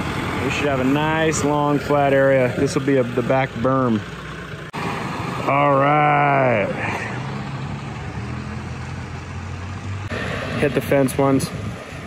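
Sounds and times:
backhoe engine idling: 0:00.0 - 0:10.1.

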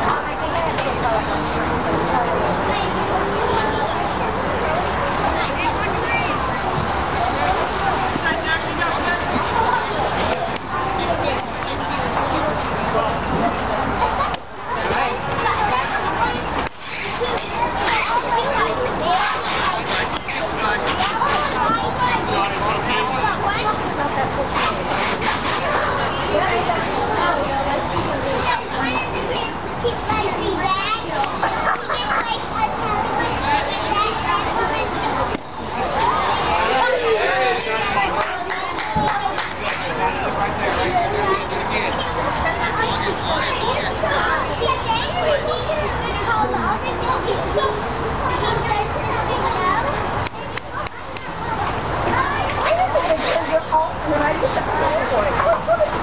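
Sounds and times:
crowd babble with children: 0:00.0 - 0:56.0.

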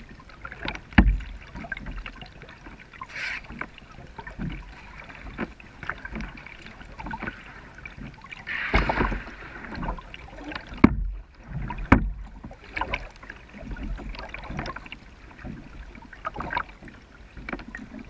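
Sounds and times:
paddle splashing in water: 0:00.0 - 0:18.0.

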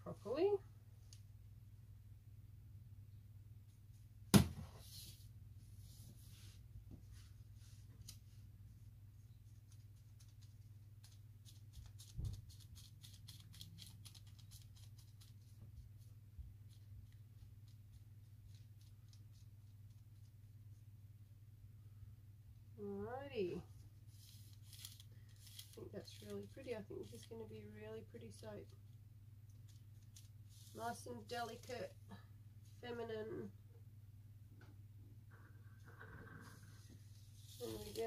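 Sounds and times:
fingertips tapping dried petals: 0:09.6 - 0:20.5, 0:24.2 - 0:31.8.

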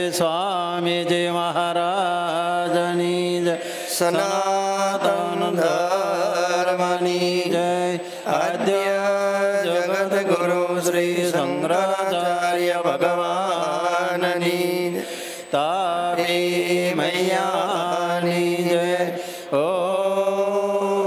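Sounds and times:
man chanting: 0:00.0 - 0:21.0.

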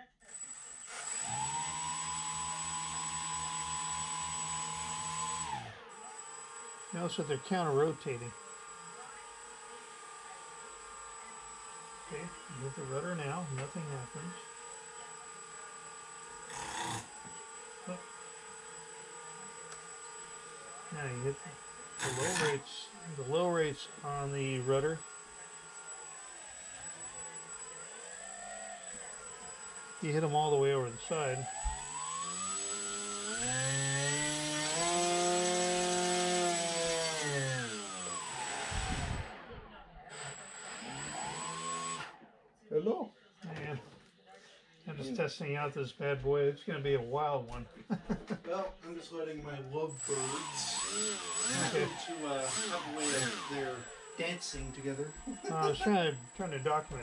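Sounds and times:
electric motors whining: 0:00.0 - 0:42.3, 0:49.6 - 0:57.0.

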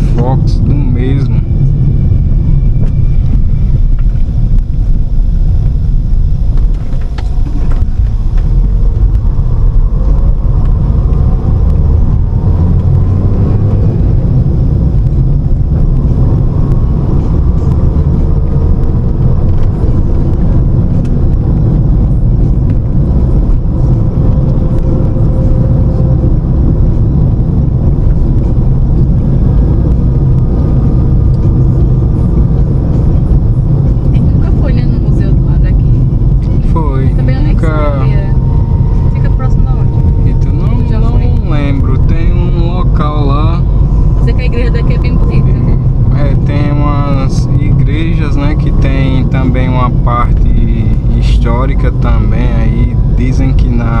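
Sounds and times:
car road and engine noise: 0:00.0 - 0:54.0
person talking: 0:36.6 - 0:38.4, 0:39.2 - 0:43.6, 0:44.2 - 0:54.0.

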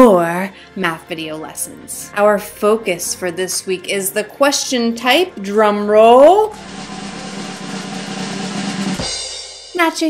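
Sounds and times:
snare drum roll: 0:06.5 - 0:09.5.

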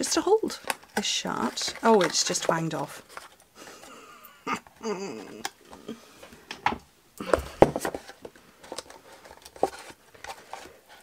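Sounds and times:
soft clicks and rustles: 0:07.7 - 0:11.0.

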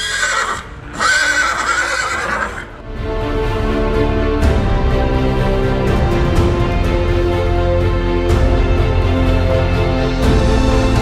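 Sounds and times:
horse neighing: 0:00.0 - 0:02.8
background music: 0:00.0 - 0:11.0.

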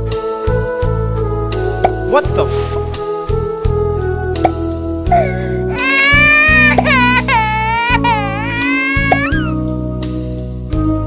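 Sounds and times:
comic wail sound effect: 0:05.8 - 0:09.5.

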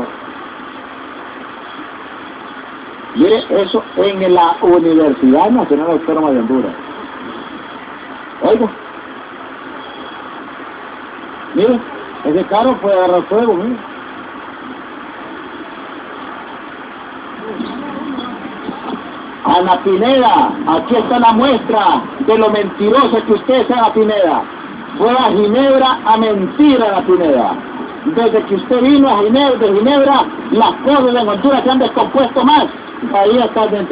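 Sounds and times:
faint low hum: 0:00.0 - 0:33.9
street traffic: 0:00.0 - 0:33.9.

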